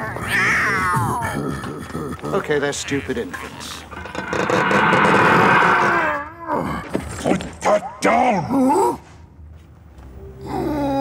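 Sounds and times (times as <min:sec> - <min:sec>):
creature's rough cry: 0:00.0 - 0:06.9.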